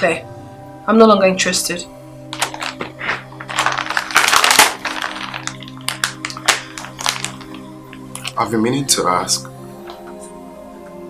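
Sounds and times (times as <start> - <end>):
low sustained background music: 0.0 - 11.0.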